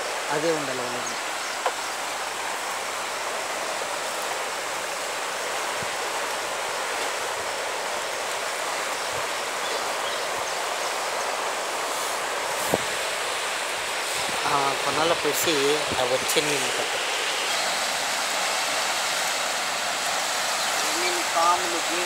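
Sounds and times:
river rushing past bank: 0:00.0 - 0:22.0.

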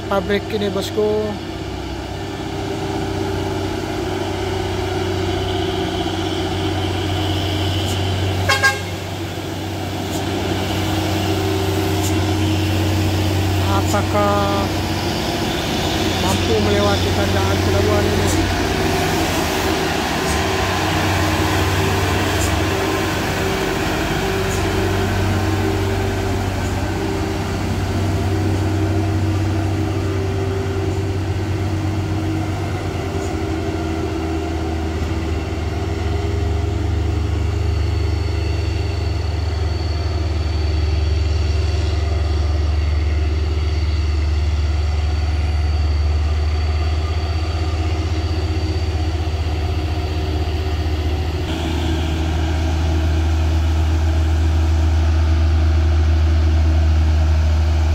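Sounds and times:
diesel truck engines labouring: 0:00.0 - 0:57.9
thin high whine: 0:05.1 - 0:57.9.

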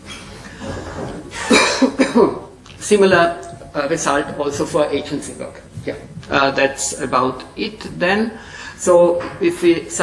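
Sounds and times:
man coughing: 0:01.3 - 0:02.5.

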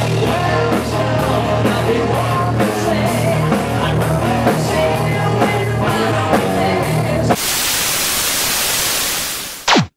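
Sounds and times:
rock music: 0:00.0 - 0:07.4
television static hiss: 0:07.4 - 0:09.9.

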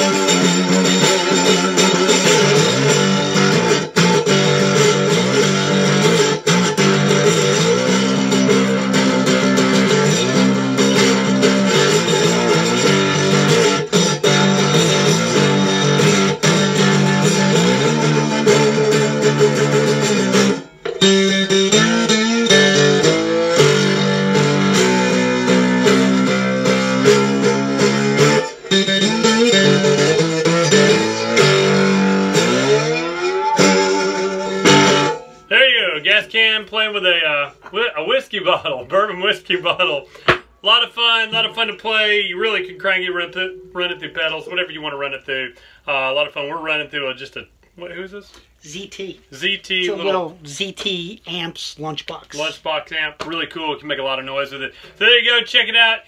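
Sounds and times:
slide guitar through amp: 0:00.0 - 0:45.8.

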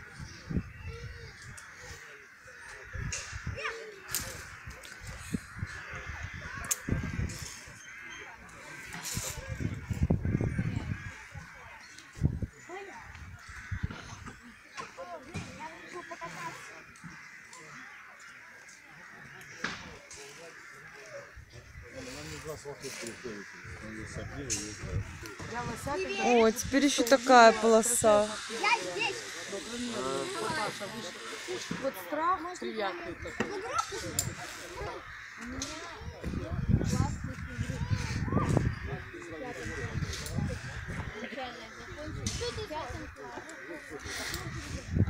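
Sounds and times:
bird calls: 0:00.0 - 0:45.0
crows cawing: 0:00.0 - 0:45.0
faint distant voices: 0:00.0 - 0:45.0
people talking indistinctly: 0:00.0 - 0:45.0
high rising calls: 0:26.0 - 0:32.4.

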